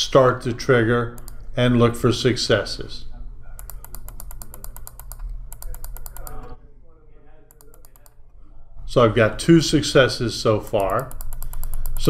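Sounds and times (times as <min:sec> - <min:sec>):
steady low hum: 0:00.0 - 0:12.0
computer mouse clicks: 0:01.2 - 0:01.4, 0:03.6 - 0:06.5, 0:07.5 - 0:08.2, 0:10.8 - 0:12.0.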